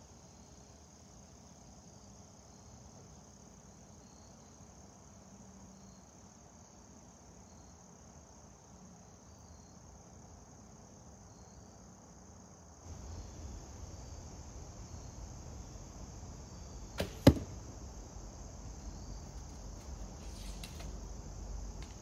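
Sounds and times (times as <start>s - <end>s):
crickets chirring: 0.0s - 22.0s
bowstring snap: 17.0s - 17.6s
arrow thud into target: 17.0s - 17.7s.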